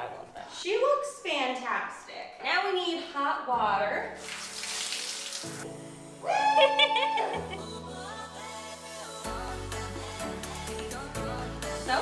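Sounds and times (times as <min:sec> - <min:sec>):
background music: 0:00.0 - 0:12.0
shower spraying on tiled floor: 0:04.2 - 0:05.7
person singing: 0:06.1 - 0:12.0.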